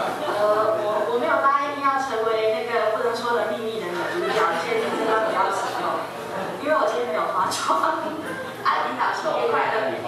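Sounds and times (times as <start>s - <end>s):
woman speaking in high voice: 0.4s - 6.0s, 6.6s - 9.8s.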